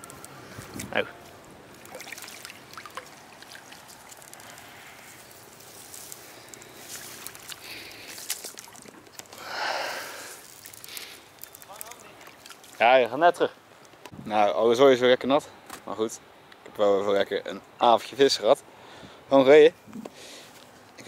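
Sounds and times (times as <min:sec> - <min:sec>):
faint rustling of net: 0:00.0 - 0:12.8.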